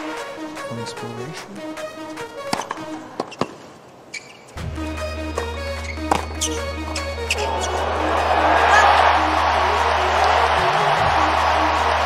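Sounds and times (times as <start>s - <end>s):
background music with steady tones: 0.0s - 3.4s, 4.2s - 12.0s
tennis racket hitting ball: 2.4s - 3.6s, 6.0s - 6.5s.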